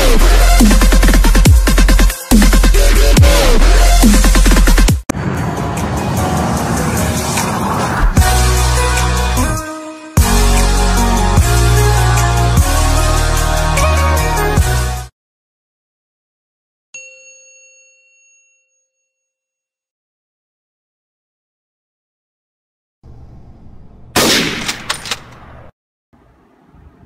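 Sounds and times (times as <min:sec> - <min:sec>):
electronic music: 0:00.0 - 0:15.1
bell-like chime: 0:17.0 - 0:19.8.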